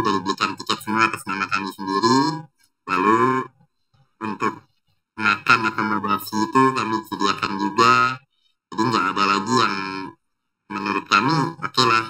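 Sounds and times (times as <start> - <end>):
man speaking: 0.0 - 3.5, 4.2 - 4.6, 5.2 - 12.0.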